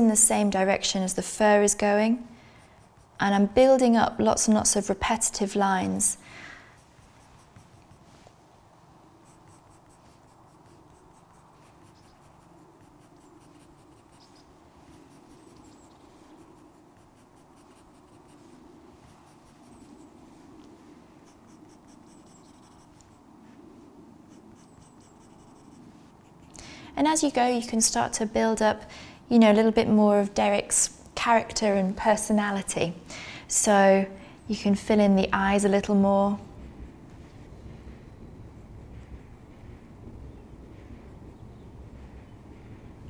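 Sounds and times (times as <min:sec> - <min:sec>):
pencil scratching on paper: 0:01.5 - 0:04.4, 0:06.7 - 0:08.4, 0:09.2 - 0:20.1, 0:21.2 - 0:23.2, 0:24.3 - 0:26.6.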